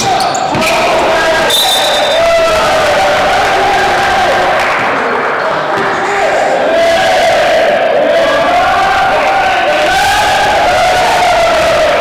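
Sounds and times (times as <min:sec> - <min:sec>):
people shouting drawn-out calls: 0:00.0 - 0:12.0.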